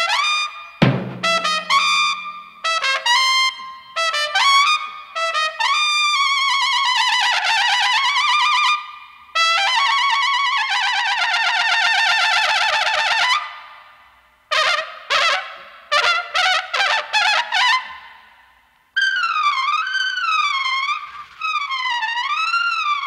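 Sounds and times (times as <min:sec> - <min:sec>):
low thump: 0:00.8 - 0:02.3
jazz trumpet playing: 0:00.8 - 0:03.4.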